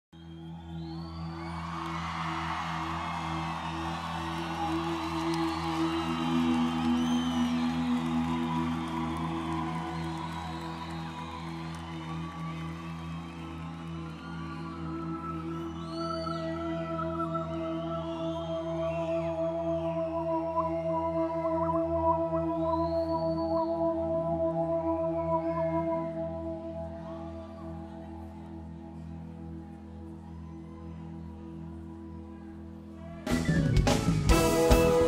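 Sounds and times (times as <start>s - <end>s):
audience noise: 0.2s - 35.0s
high whistles: 3.0s - 12.6s, 13.4s - 21.2s
live band holding chords: 33.2s - 35.0s.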